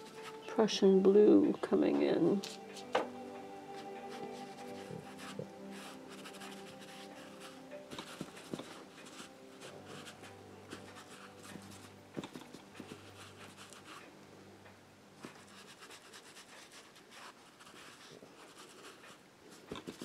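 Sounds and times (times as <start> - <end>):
faint background music: 0.0 - 20.0
oil pastel scratching on canvas: 4.1 - 14.0, 15.2 - 20.0.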